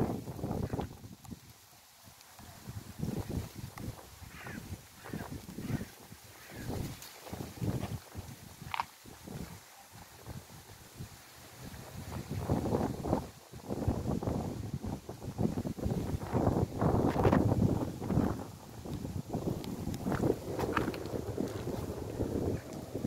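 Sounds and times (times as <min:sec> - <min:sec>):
wind buffeting microphone: 0:00.0 - 0:01.6, 0:02.4 - 0:23.0.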